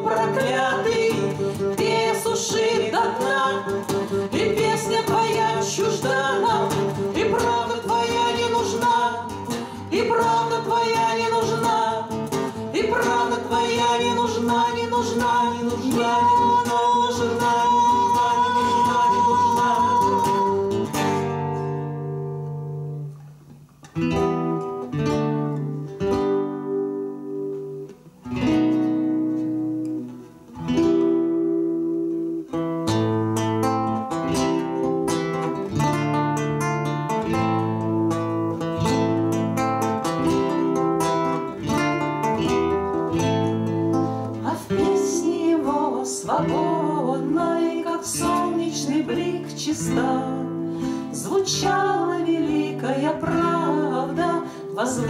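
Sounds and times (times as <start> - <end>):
person singing: 0.0 - 21.3, 44.2 - 55.0
acoustic guitars strumming: 0.0 - 55.0.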